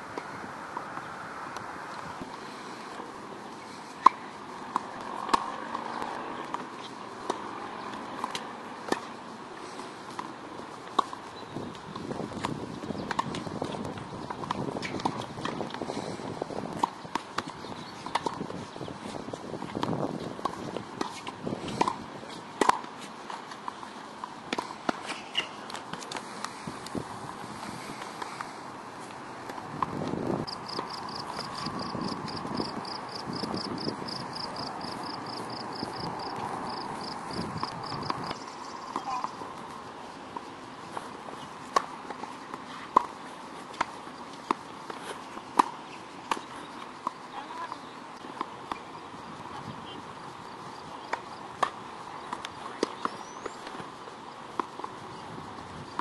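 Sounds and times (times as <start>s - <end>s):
rackets striking tennis balls: 0.1s - 55.0s
tennis balls bouncing on court: 0.1s - 56.0s
footsteps and shoe scuffs: 19.0s - 47.2s.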